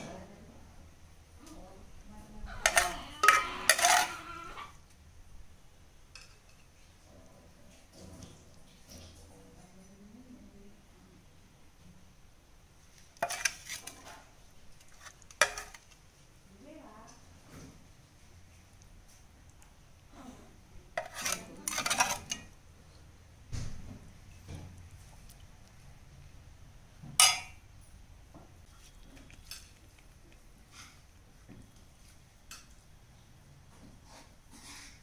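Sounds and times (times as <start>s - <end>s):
spoon scraping metal pot: 2.5s - 4.7s, 13.2s - 14.1s, 14.8s - 16.0s, 20.9s - 22.6s.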